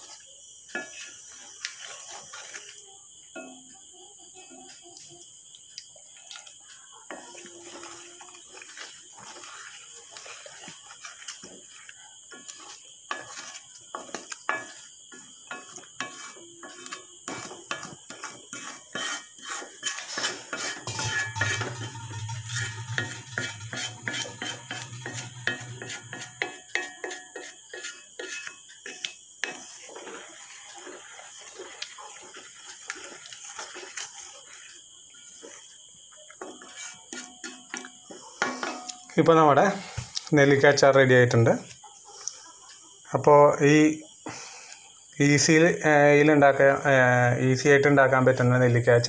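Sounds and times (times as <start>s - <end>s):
spoon stirring thick paste: 0.0s - 2.8s, 6.2s - 40.7s
wooden spatula scraping metal pan: 0.7s - 2.8s, 6.7s - 35.8s, 36.4s - 39.1s.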